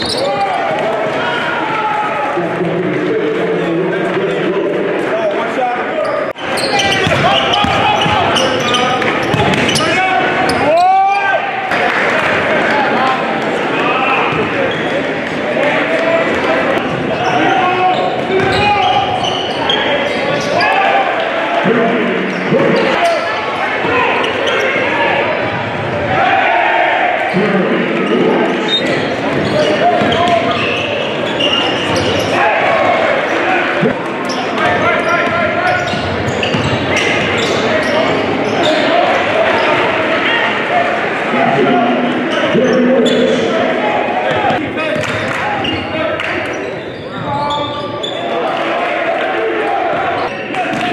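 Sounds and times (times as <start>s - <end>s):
sneaker squeaks: 0.0s - 0.6s, 6.0s - 10.9s, 16.8s - 20.9s, 22.3s - 24.9s, 28.0s - 32.4s, 34.2s - 39.8s, 42.1s - 43.7s, 44.3s - 48.4s
crowd chatter: 0.0s - 50.9s
voices of players and spectators: 0.0s - 50.9s.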